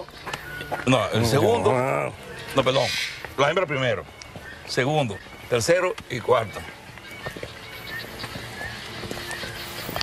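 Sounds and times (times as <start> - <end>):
footsteps on cobblestones: 0.0 - 1.4, 2.2 - 10.0.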